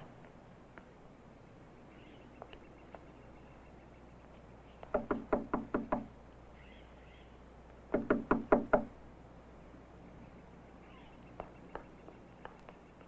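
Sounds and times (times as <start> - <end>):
knocking on a door: 5.0 - 6.1, 7.9 - 8.9.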